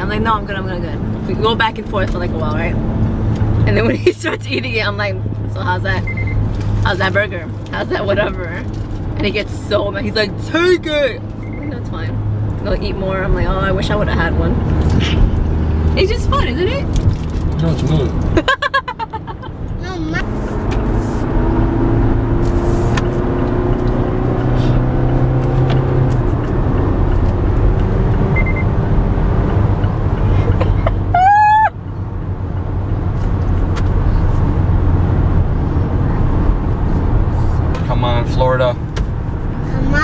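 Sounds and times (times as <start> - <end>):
car road and engine noise: 0.0 - 40.0.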